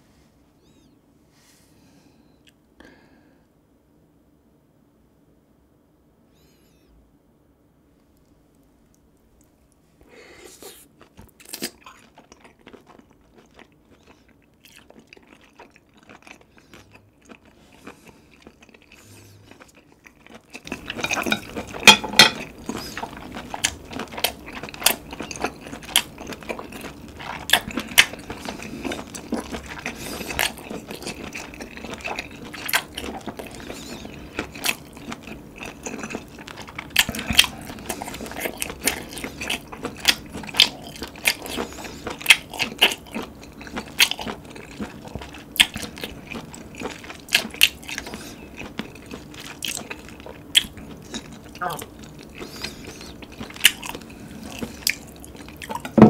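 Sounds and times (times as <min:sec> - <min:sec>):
chewing: 0:10.5 - 0:56.0
faint mouth sounds: 0:51.5 - 0:53.3.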